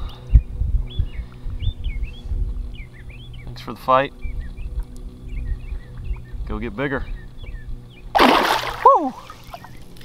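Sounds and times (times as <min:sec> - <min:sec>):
low rumble: 0:00.0 - 0:09.0
faint steady hum: 0:00.0 - 0:10.0
bird chirping: 0:00.1 - 0:08.2, 0:09.2 - 0:10.0.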